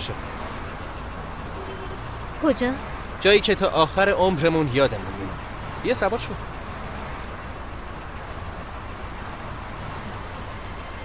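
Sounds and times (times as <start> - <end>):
distant road traffic hum: 0.0 - 11.0.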